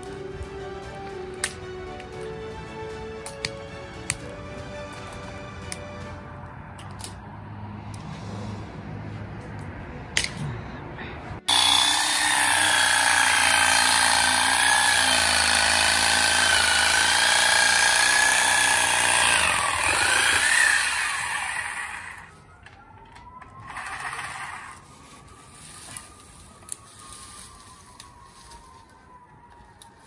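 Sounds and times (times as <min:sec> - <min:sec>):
reciprocating saw cutting branches: 0:11.5 - 0:22.3, 0:23.6 - 0:24.8.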